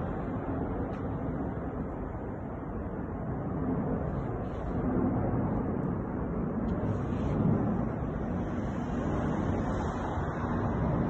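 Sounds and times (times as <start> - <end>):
street background rumble: 0.0 - 11.0.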